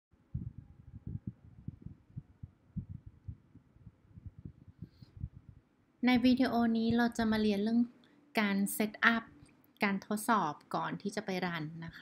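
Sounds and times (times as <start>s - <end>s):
soft low thumps: 0.3s - 7.6s.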